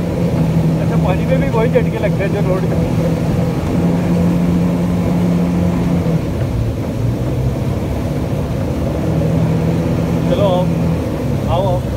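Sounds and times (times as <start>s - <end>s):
motorboat engine running: 0.0s - 11.9s
rushing water: 0.0s - 11.9s.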